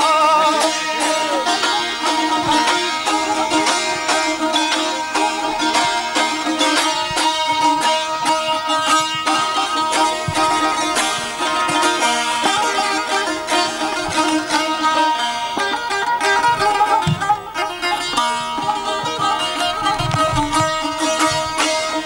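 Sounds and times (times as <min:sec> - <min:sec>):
plucked lutes playing folk tune: 0:00.0 - 0:22.0.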